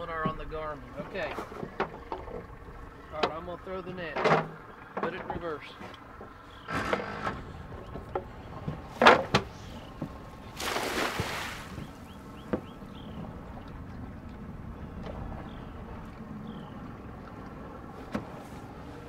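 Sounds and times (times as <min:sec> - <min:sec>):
boat motor running: 0:00.0 - 0:19.0
net splashing onto water: 0:10.5 - 0:11.8.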